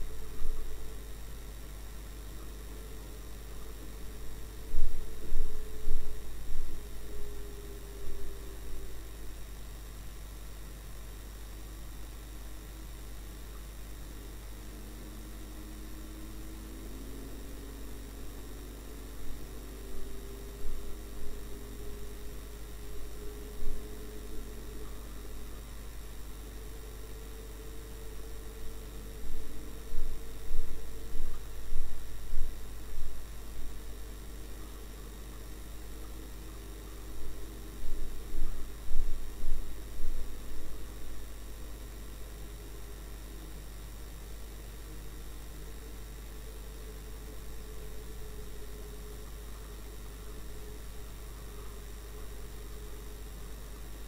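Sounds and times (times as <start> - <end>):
low electrical hum and hiss: 0.0 - 54.0.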